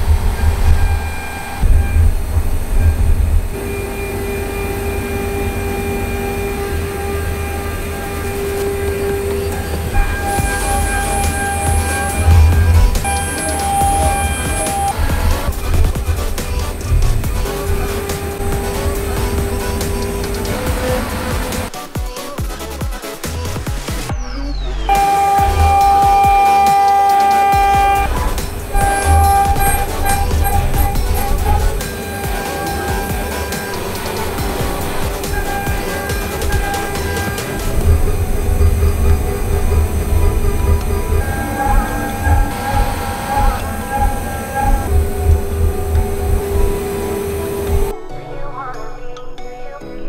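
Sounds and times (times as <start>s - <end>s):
milling spindle whine cutting metal: 0.0s - 21.7s, 24.9s - 47.9s
electronic music with low beat: 0.0s - 48.0s.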